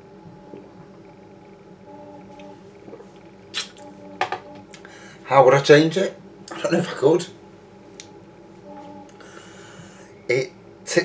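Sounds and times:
low hum of held tones: 0.0s - 11.0s.

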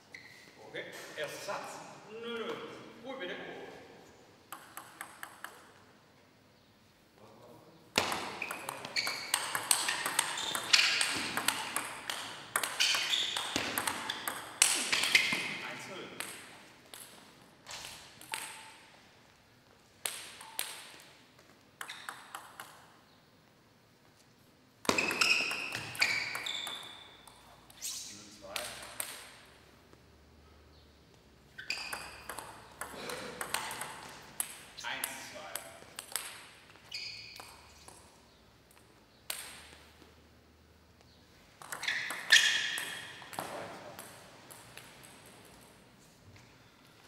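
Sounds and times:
table tennis ball clicking: 4.5s - 5.8s, 8.0s - 15.1s, 21.8s - 22.8s, 31.8s - 34.6s, 41.6s - 45.2s.

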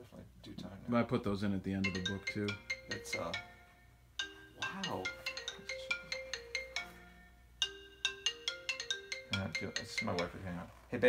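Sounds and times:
marimba ringtone: 1.8s - 10.7s.

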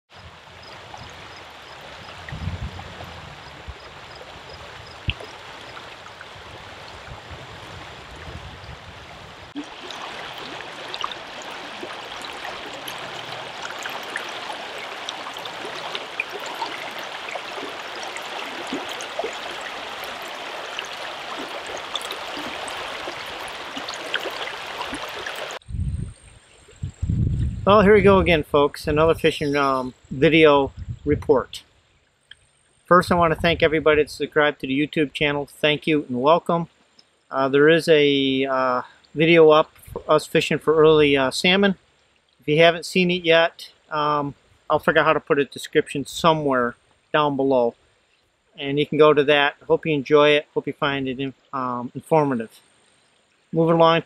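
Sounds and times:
river rushing over rocks: 9.6s - 25.6s.

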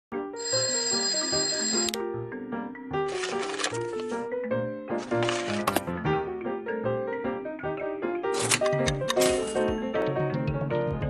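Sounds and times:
background music: 0.3s - 11.0s.

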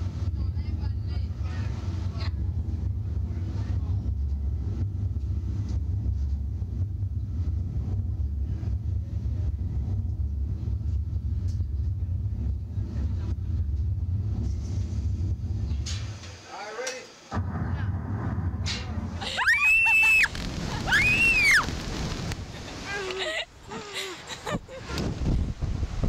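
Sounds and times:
low bass rumble: 0.0s - 16.2s, 17.3s - 23.1s.

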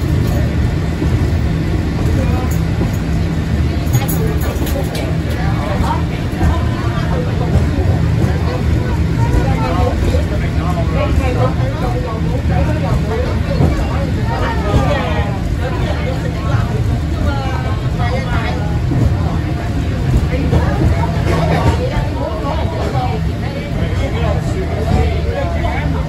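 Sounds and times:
funicular car rumbling on track: 0.0s - 26.0s
passengers talking: 0.0s - 26.0s.

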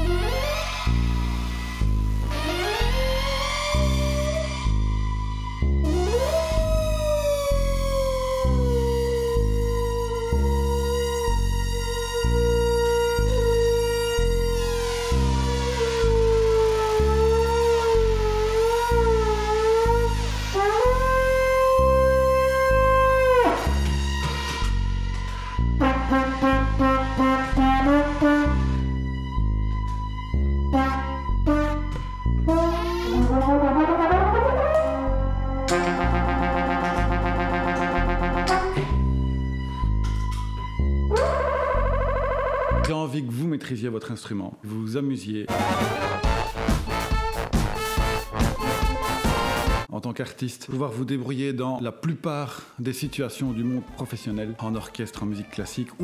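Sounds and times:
trombone through effects pedals: 0.0s - 4.5s, 5.8s - 24.8s, 25.5s - 29.0s, 30.7s - 39.1s, 41.1s - 42.9s, 45.5s - 49.9s
pulsing bass line: 0.0s - 42.9s.

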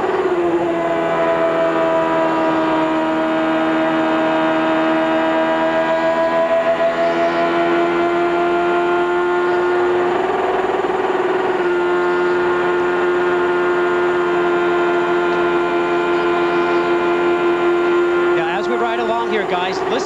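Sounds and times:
race car engine at full throttle: 0.0s - 20.0s.

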